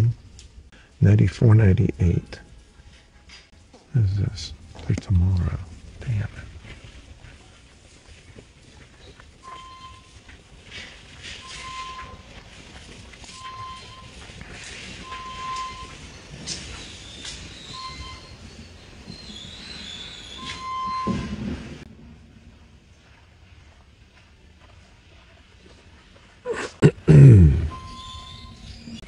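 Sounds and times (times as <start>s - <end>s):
warehouse store background noise: 0.0s - 6.4s, 11.2s - 12.3s, 13.3s - 21.9s
short electronic beeps: 9.4s - 10.2s, 11.4s - 12.3s, 13.3s - 14.2s, 15.0s - 16.0s, 17.7s - 18.4s, 27.2s - 29.0s.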